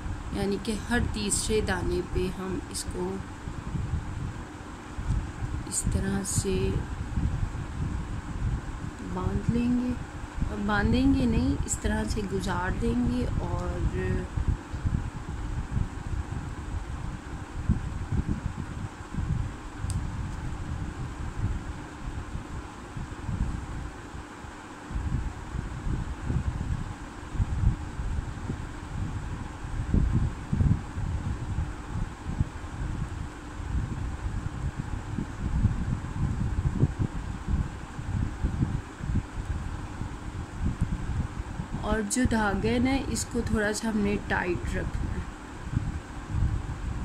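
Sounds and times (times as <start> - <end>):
air rumble on microphone: 0.0 - 47.0
faint hum: 0.0 - 47.0
fan air noise: 0.0 - 47.0.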